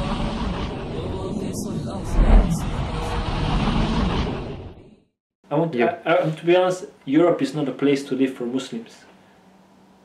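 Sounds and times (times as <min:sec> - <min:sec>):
noisy rumble: 0:00.0 - 0:05.0.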